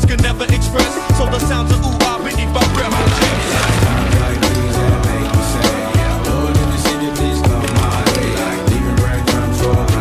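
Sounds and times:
backing music with steady beat: 0.0 - 10.0.

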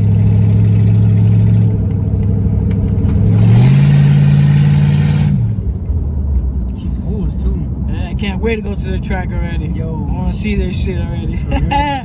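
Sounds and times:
car engine while driving: 0.0 - 12.0.

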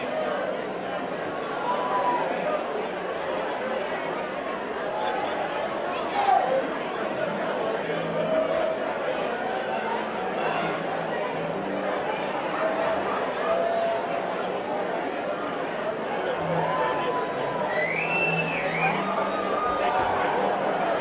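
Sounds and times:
crowd chatter: 0.0 - 21.0
high whistle: 17.7 - 19.0.

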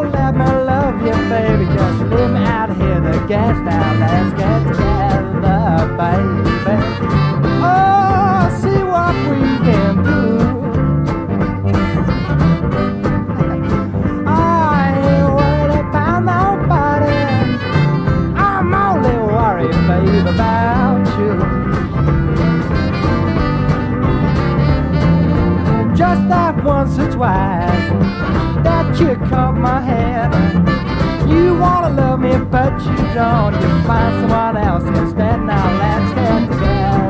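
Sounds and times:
guitar and bass backing: 0.0 - 37.0
harmonica lead with bent notes: 0.0 - 37.0.

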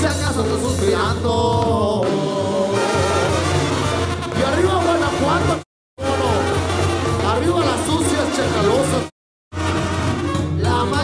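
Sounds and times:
brass band playing: 2.0 - 11.0.

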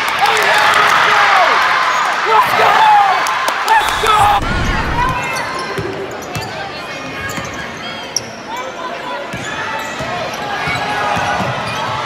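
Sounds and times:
spectators shouting: 3.7 - 5.3
low thuds: 3.8 - 5.3.

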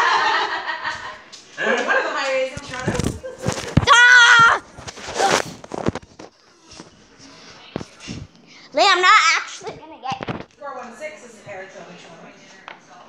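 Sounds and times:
child's wavering cry: 3.9 - 4.6
children's voices: 8.6 - 10.3.

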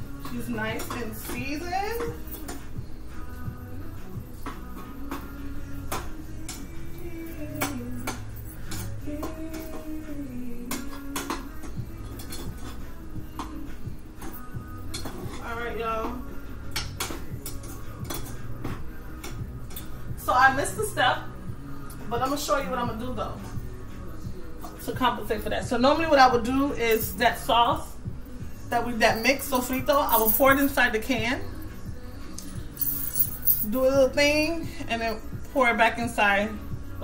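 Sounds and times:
utensil clinking against pots: 0.2 - 2.6.

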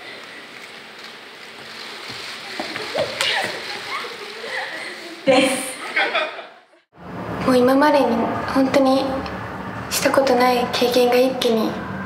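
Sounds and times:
laughter: 3.3 - 6.8.

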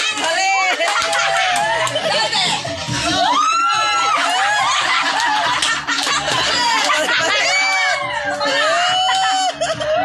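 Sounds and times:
people laughing and giggling: 0.0 - 10.0.

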